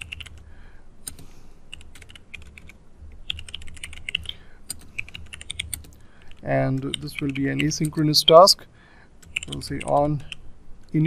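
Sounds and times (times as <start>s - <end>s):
computer keyboard typing: 0.0s - 0.4s, 1.0s - 8.5s, 9.2s - 10.4s.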